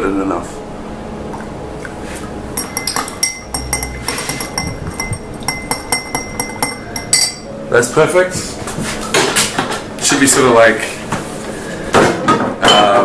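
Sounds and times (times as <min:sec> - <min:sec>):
spoon clinking against glass: 0:02.6 - 0:07.5.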